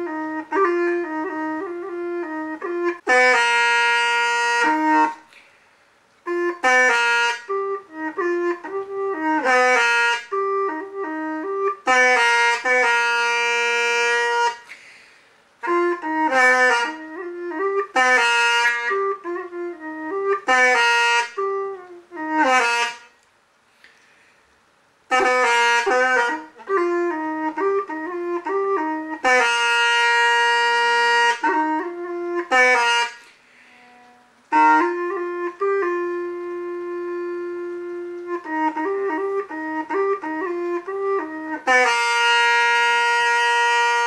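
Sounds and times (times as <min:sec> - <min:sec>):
bamboo pipe playing slow melody: 0:00.0 - 0:44.0.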